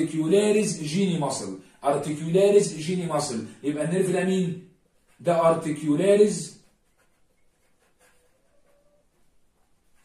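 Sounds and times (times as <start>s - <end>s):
man speaking: 0.0s - 6.6s
marker writing on whiteboard: 0.0s - 10.0s.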